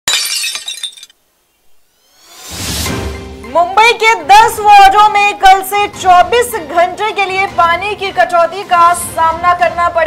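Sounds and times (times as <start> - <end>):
glass shattering: 0.1 - 1.2.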